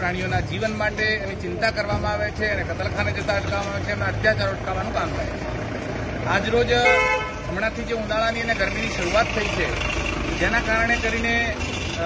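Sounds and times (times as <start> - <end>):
men talking: 0.0 - 12.0
street traffic: 0.0 - 12.0
vehicle horn honking: 6.8 - 7.5.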